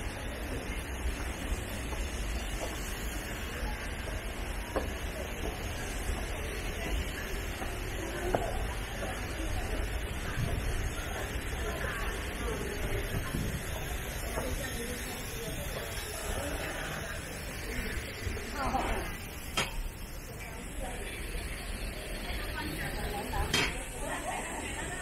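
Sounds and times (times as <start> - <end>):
distant people talking: 0.0 - 25.0.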